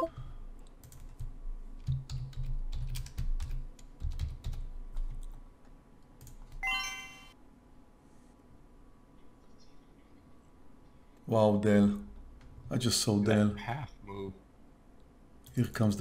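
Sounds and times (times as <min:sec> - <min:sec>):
computer keyboard typing: 0:00.0 - 0:05.4, 0:06.2 - 0:06.6
electronic alert tone: 0:06.6 - 0:07.4.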